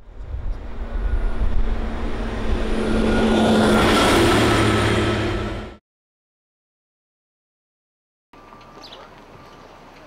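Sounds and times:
bus engine hum: 0.0 - 5.8
road noise: 0.0 - 5.8.

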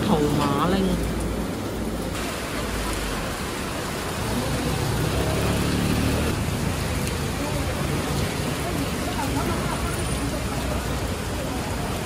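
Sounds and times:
heavy rain hiss: 0.0 - 12.0.

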